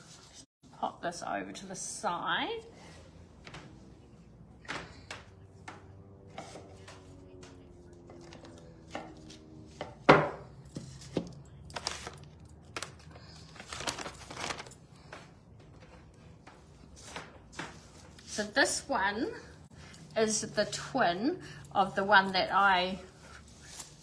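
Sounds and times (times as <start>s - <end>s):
objects knocking on a table: 9.8s - 10.5s
paper rustling: 10.8s - 16.0s.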